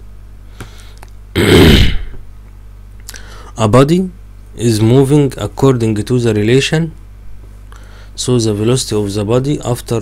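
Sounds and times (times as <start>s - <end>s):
man clearing his throat: 1.4s - 2.2s.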